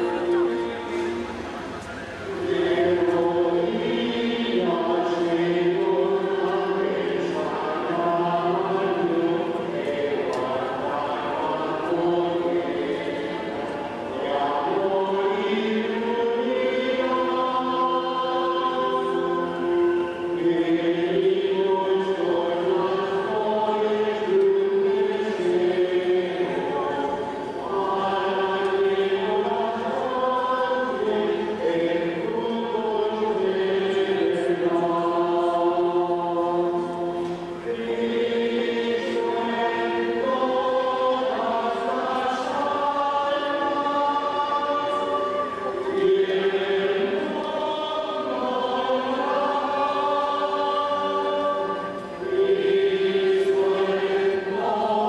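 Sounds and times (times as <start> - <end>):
group singing a chant: 2.2 - 55.0.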